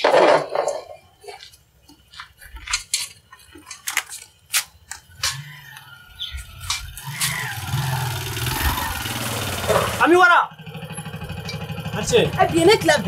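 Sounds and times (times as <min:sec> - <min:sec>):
vehicle engine starting and idling: 0:06.6 - 0:13.0.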